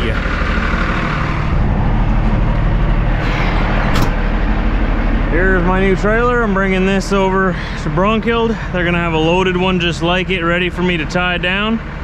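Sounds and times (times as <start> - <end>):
diesel engine idling: 0.0 - 12.0
sharp click: 3.9 - 4.2.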